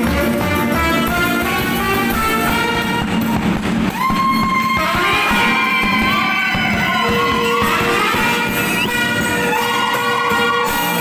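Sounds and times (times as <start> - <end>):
live dance band music: 0.0 - 11.0.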